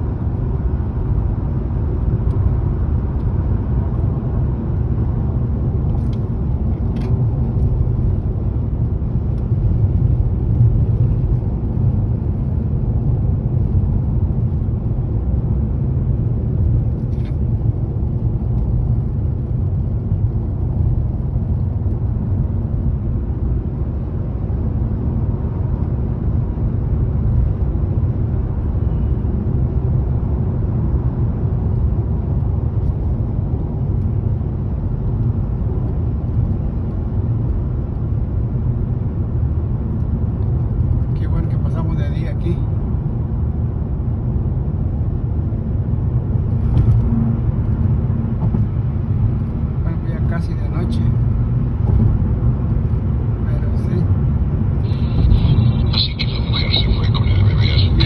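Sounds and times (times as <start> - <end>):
road and engine rumble in car: 0.0 - 58.0.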